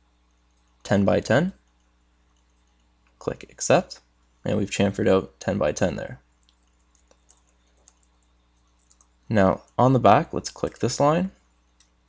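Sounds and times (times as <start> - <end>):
person speaking: 0.8 - 1.7, 3.2 - 6.3, 9.2 - 11.4
computer mouse clicks: 6.4 - 9.8, 11.6 - 12.0.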